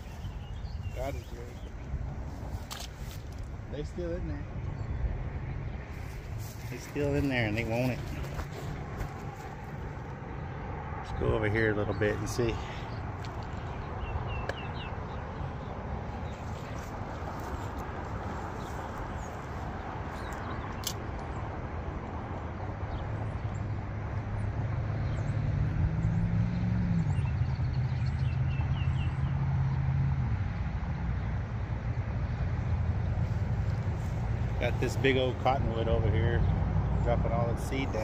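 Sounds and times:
low engine drone: 0:00.0 - 0:38.0
wind rumble on microphone: 0:00.0 - 0:38.0.

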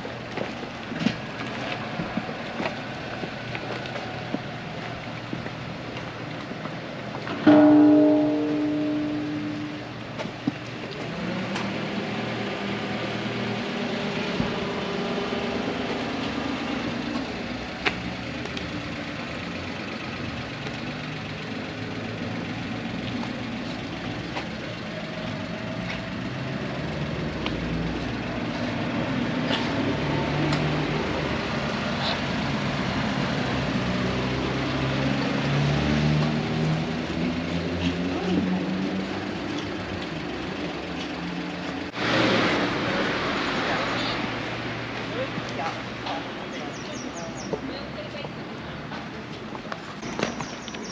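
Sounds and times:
vehicle engine idling: 0:00.0 - 0:50.9
ringing tone: 0:07.4 - 0:09.9.

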